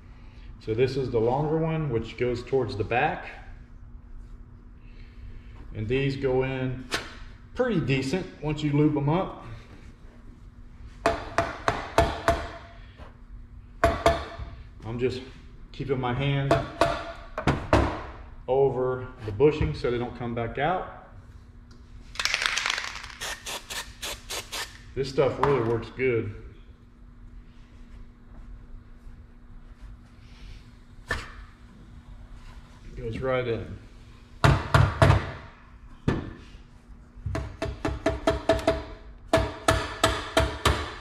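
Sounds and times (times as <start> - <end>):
faint steady hum: 0.0 - 41.0.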